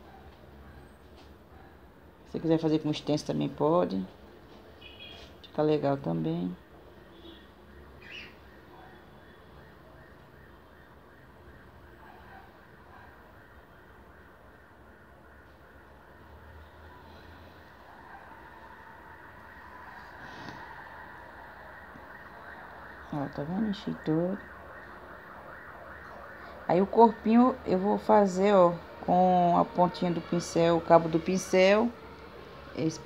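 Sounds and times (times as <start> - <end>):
faint background noise: 0.0 - 33.0.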